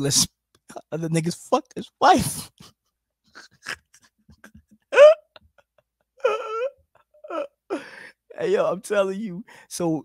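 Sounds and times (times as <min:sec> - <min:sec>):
man laughing in squeals: 0:03.3 - 0:07.6.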